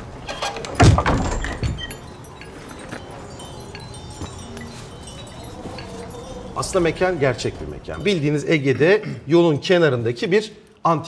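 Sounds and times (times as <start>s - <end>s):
hanging chimes tinkling: 0.0s - 9.2s.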